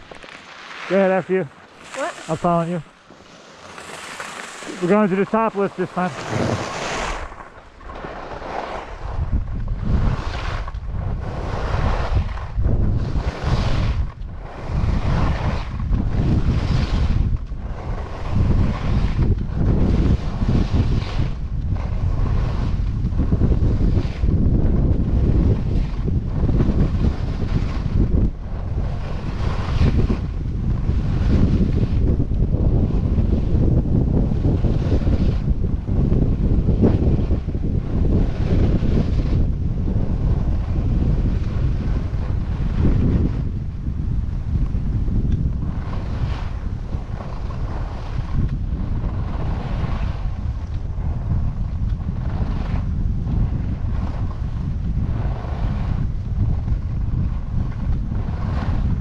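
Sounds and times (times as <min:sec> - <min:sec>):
skis carving snow: 0:00.0 - 0:33.5, 0:34.3 - 0:59.0
wind rushing over microphone: 0:00.0 - 0:59.0.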